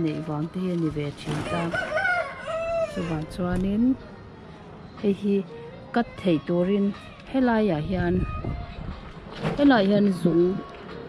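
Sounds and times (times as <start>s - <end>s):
rooster crowing: 1.5s - 3.2s
person talking: 9.6s - 10.6s.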